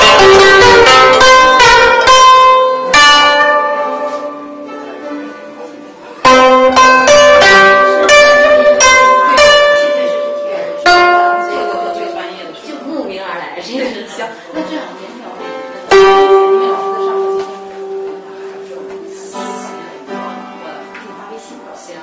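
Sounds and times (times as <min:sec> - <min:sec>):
plucked zither notes: 0:00.0 - 0:21.4.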